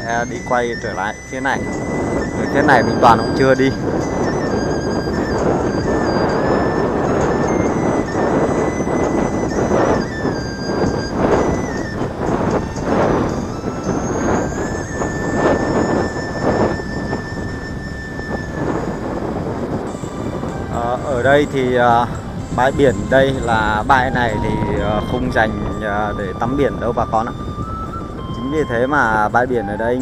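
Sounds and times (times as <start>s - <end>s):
music: 0.0s - 30.0s
thin high whine: 0.0s - 30.0s
wind rushing over microphone: 0.0s - 30.0s.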